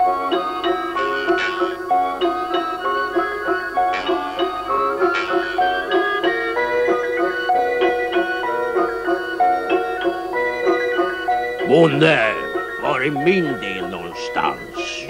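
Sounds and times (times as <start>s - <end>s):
plucked string music: 0.0s - 15.0s.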